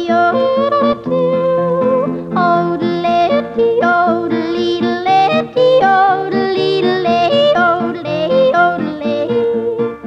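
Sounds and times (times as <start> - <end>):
strummed guitar: 0.0 - 10.0.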